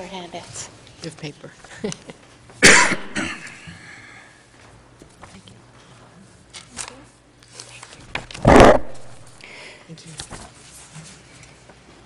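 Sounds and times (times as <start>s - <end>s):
person coughing: 2.6s - 3.6s.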